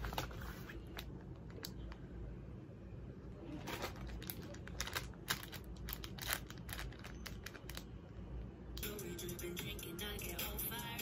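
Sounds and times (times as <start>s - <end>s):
plastic packaging crinkling: 3.5s - 7.9s
music: 8.8s - 11.0s.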